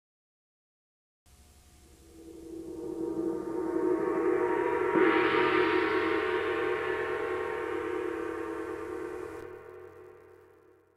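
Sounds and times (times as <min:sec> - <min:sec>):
deep gong-like ringing: 0:01.8 - 0:10.8.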